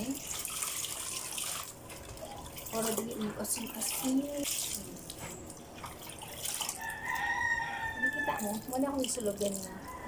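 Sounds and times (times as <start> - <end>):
clothes splashing in water: 0.0 - 6.9
rooster crowing: 6.8 - 8.6.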